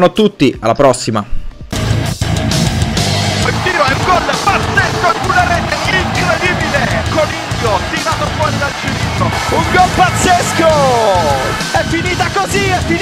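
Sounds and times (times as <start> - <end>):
guitar-driven rock music: 1.8 - 13.0.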